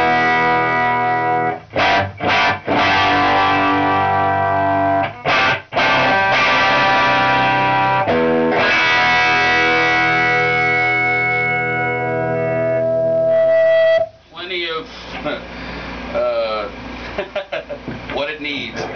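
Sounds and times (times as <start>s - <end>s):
electric guitar chords ringing: 0.0s - 14.2s.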